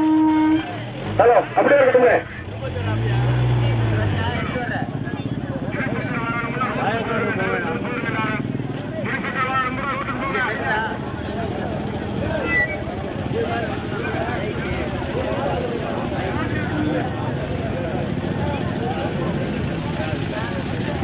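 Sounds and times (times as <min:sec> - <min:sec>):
engine revving: 0:00.1 - 0:09.3.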